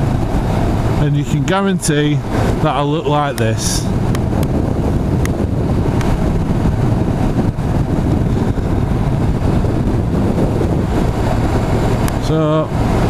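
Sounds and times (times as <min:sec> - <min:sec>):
motorcycle engine: 0:00.0 - 0:01.1, 0:04.0 - 0:13.0
road noise: 0:00.0 - 0:13.0
wind rush on microphone: 0:00.0 - 0:13.0.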